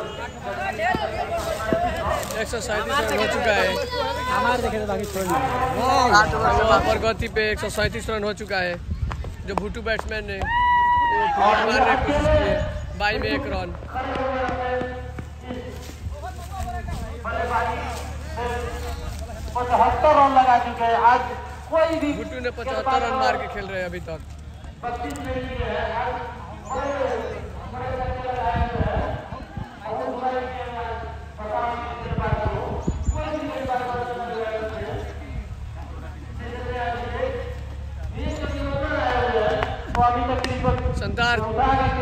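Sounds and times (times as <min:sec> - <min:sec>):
men talking: 0:00.0 - 0:42.0
men's voices calling: 0:00.0 - 0:42.0.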